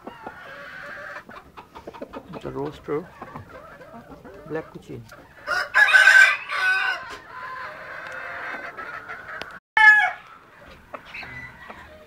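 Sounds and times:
chicken squawk: 0:00.0 - 0:02.2
chickens clucking: 0:00.0 - 0:09.6, 0:10.2 - 0:12.0
rooster crowing: 0:05.4 - 0:08.7, 0:09.8 - 0:10.3, 0:11.1 - 0:12.0.

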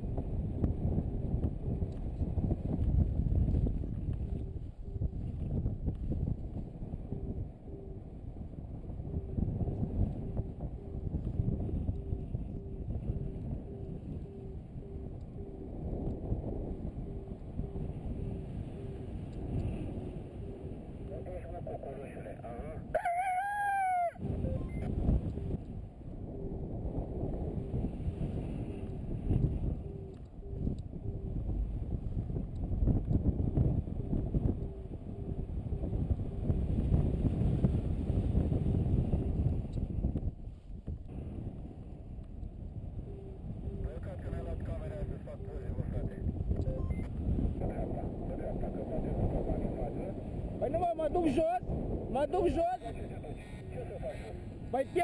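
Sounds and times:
wind rushing over microphone: 0:00.0 - 0:55.0
rooster-like crow: 0:22.9 - 0:24.2
variometer beeping: 0:24.3 - 0:25.4, 0:46.5 - 0:47.1.

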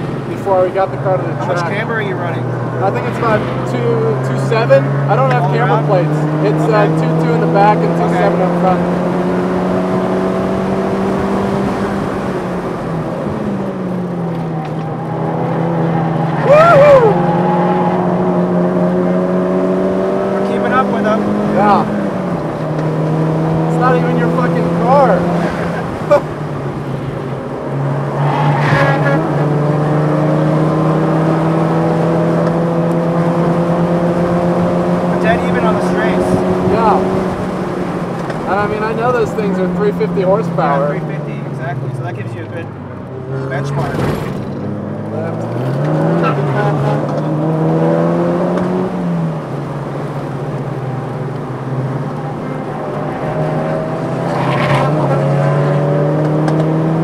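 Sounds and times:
car engine accelerating through gears: 0:00.0 - 0:57.0.

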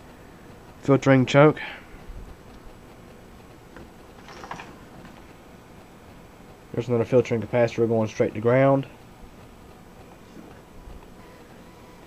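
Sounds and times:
handling noise: 0:03.7 - 0:05.3.

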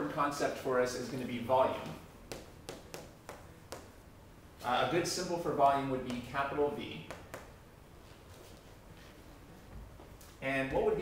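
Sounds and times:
chalk tapping on chalkboard: 0:02.3 - 0:04.0, 0:06.0 - 0:06.4, 0:07.0 - 0:07.6.

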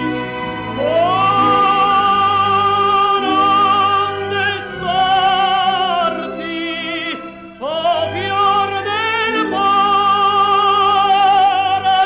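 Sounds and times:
operatic tenor singing: 0:00.0 - 0:12.0
orchestra: 0:00.0 - 0:12.0.

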